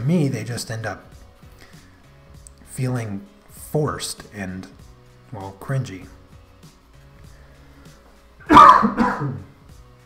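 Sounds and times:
faint background music: 0:00.0 - 0:10.0
man coughing: 0:08.5 - 0:09.5.

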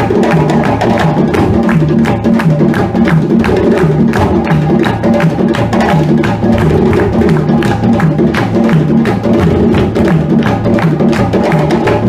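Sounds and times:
hand drums playing dance rhythm: 0:00.0 - 0:12.0
low drum notes: 0:00.0 - 0:12.0
sharp drum slaps: 0:00.0 - 0:12.0.

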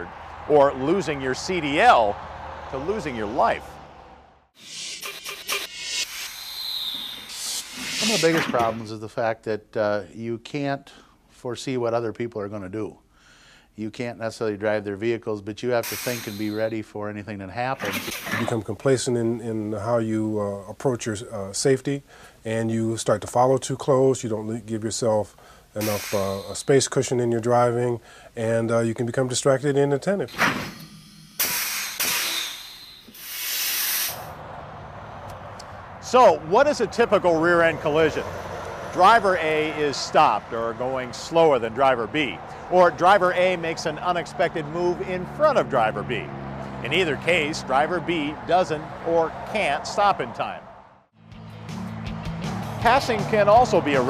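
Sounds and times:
hissing whoosh: 0:04.6 - 0:08.6, 0:30.3 - 0:34.4
whistling tone: 0:05.9 - 0:08.6, 0:16.0 - 0:16.8, 0:25.9 - 0:26.9.

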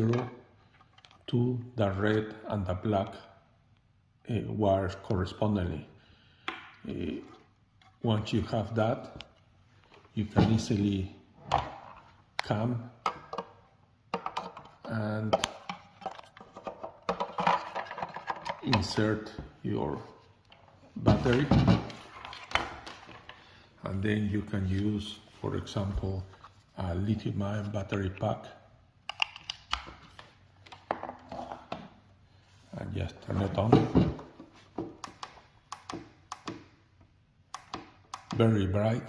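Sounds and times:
hard plastic clicks and knocks: 0:12.4 - 0:18.9
plastic plug clicks and taps: 0:37.5 - 0:38.4.

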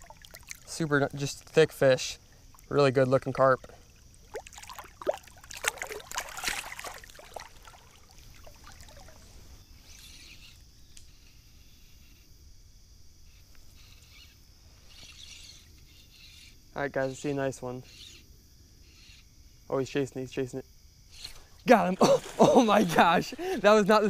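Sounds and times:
water splashing: 0:00.0 - 0:09.5, 0:21.7 - 0:24.0
quiet river background: 0:00.0 - 0:24.0.

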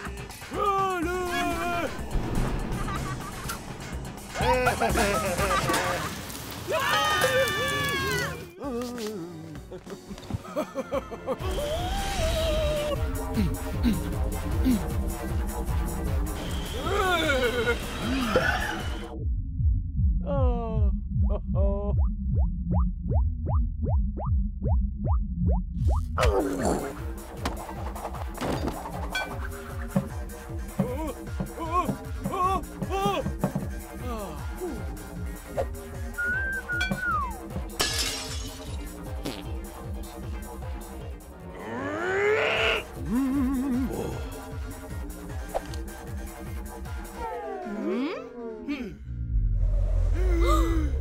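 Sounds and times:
background music: 0:00.0 - 0:21.9, 0:25.8 - 0:49.0
strained vocal noises: 0:26.2 - 0:27.8, 0:41.3 - 0:45.2.

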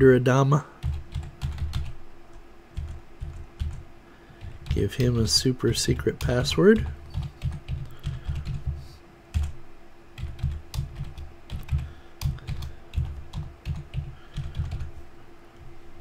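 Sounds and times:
faint steady hum: 0:00.0 - 0:16.0
computer keyboard typing: 0:00.8 - 0:02.0, 0:02.8 - 0:03.8, 0:04.4 - 0:09.6, 0:10.2 - 0:14.9.

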